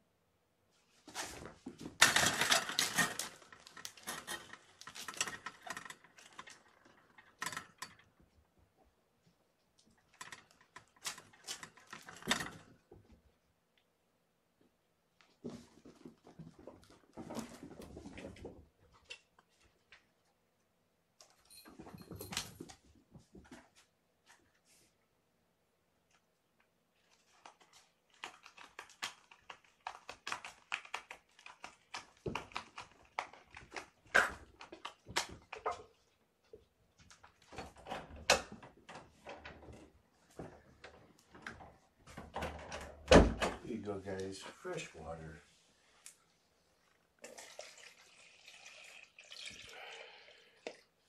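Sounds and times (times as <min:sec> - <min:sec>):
kittens playing with clicks and rattles: 0:01.1 - 0:08.9, 0:09.6 - 0:13.3, 0:21.2 - 0:23.9, 0:26.6 - 0:43.1.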